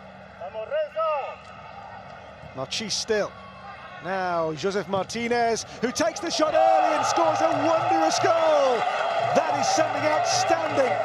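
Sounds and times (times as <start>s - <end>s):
stadium background noise: 0.0s - 11.0s
man commentating: 4.6s - 11.0s.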